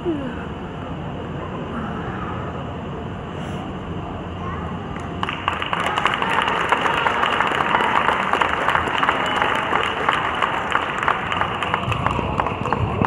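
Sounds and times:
crowd clapping: 0:05.0 - 0:13.0.

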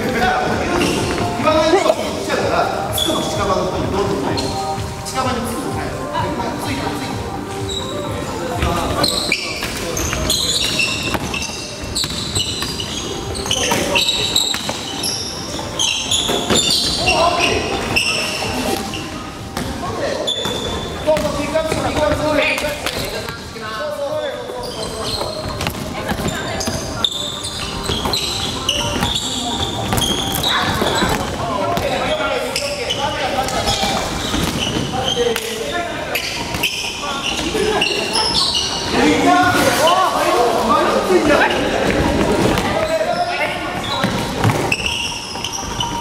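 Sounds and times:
basketballs bouncing on wooden floor: 0:10.1 - 0:13.5, 0:20.4 - 0:22.3.

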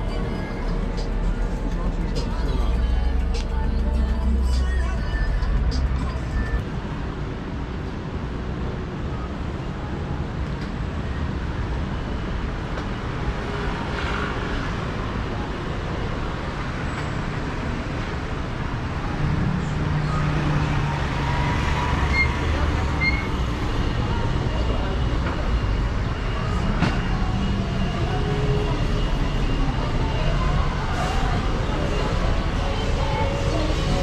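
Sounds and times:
people's voices: 0:00.0 - 0:06.6, 0:19.2 - 0:34.0
traffic engine rumble: 0:00.0 - 0:34.0.

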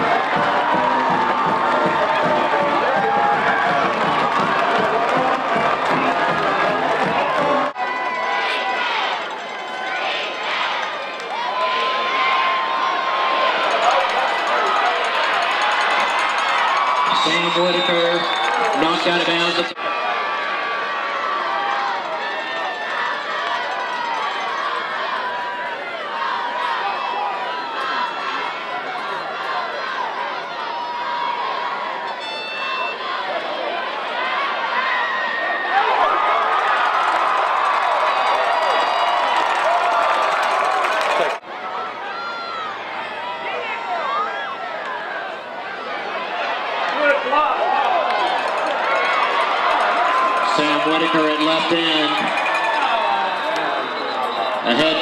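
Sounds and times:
stadium crowd talking and shouting: 0:00.0 - 0:55.0.

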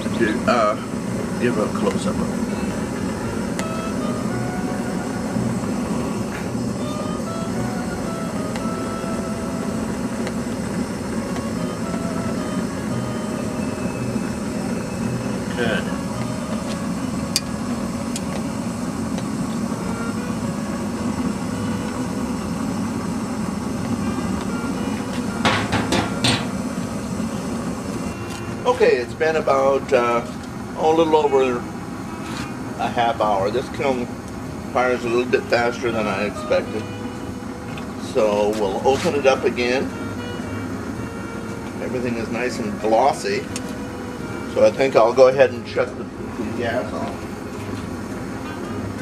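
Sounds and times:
gas burner rushing: 0:00.0 - 0:49.0.

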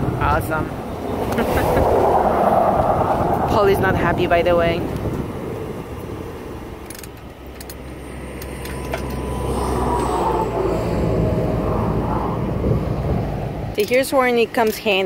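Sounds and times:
highway traffic passing: 0:00.0 - 0:15.0
vehicle rumble: 0:00.0 - 0:15.0.

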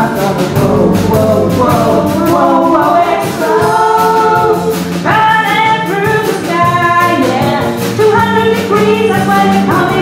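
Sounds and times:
bass: 0:00.0 - 0:10.0
drums: 0:00.0 - 0:10.0
keyboard: 0:00.0 - 0:10.0
women singing held notes: 0:00.0 - 0:10.0.

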